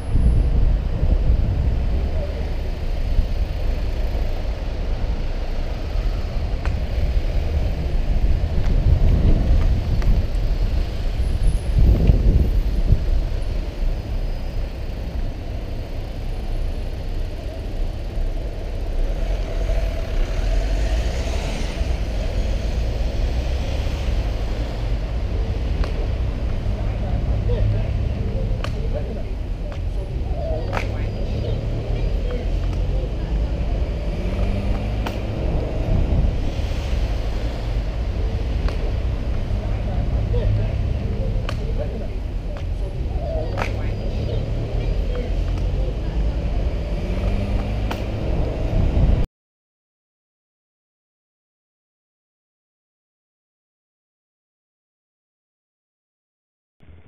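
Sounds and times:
motor vehicles running: 0.0 - 49.2
wind rumbling on microphone: 0.0 - 49.3.

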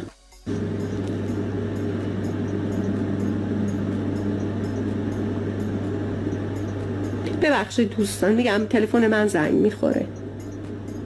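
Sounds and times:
low buzzing hum: 0.5 - 11.0.

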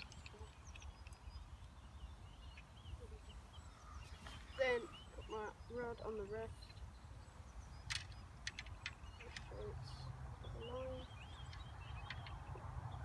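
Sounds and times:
small birds chirping: 0.0 - 13.0.

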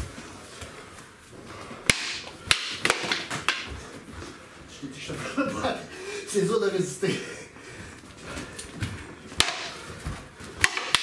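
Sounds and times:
fighting sticks clacking: 1.8 - 4.0, 8.4 - 11.0.

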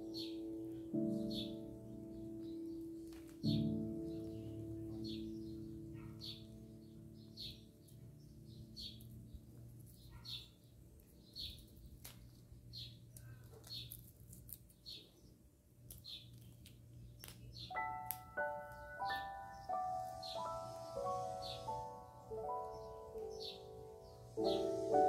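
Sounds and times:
held music chord: 0.0 - 8.9, 17.7 - 25.0
small bird chirping: 0.0 - 25.0.

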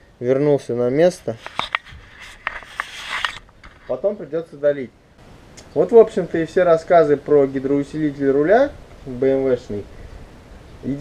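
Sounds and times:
camera handling scraping: 1.2 - 4.0.

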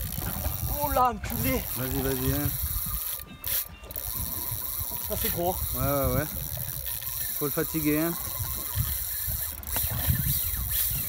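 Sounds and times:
fishing reel ratcheting: 0.0 - 11.0.

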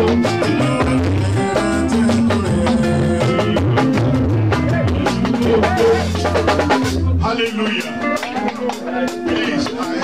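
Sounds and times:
bass line: 0.0 - 8.2
drum kit beating: 0.0 - 10.0
electric guitar: 0.0 - 10.0.

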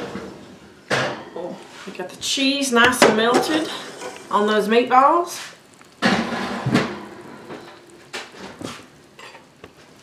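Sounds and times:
knocks and scrapes on stovetop: 2.8 - 4.4, 5.4 - 9.5
skillet and utensils clattering: 2.8 - 4.4.

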